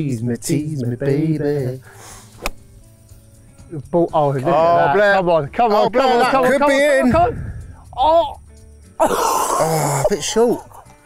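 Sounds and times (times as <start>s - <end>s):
golf club striking ball: 2.3s - 2.7s.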